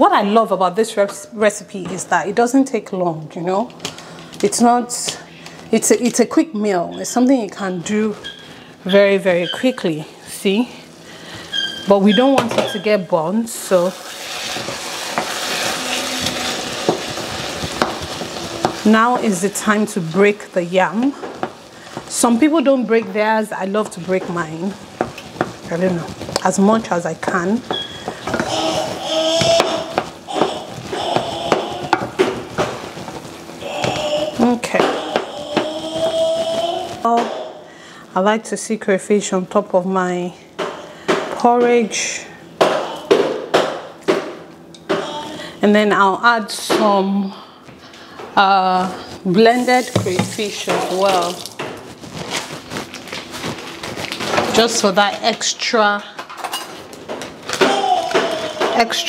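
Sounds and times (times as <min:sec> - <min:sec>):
porridge crackling sizzle: 0:10.2 - 0:37.2, 0:47.9 - 0:56.0
plastic bag crinkling: 0:13.9 - 0:22.2, 0:49.1 - 0:55.4.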